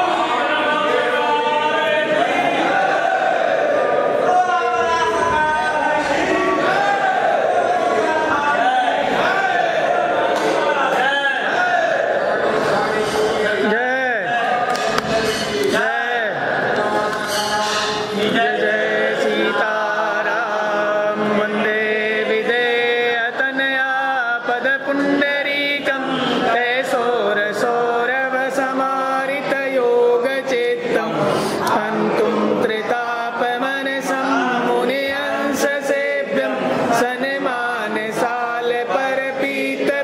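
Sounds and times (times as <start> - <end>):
voices singing a devotional hymn: 0.0 - 40.0.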